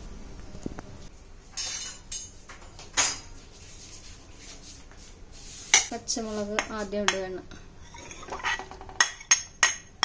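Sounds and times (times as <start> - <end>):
glass jar knocking and scraping: 7.9 - 9.5.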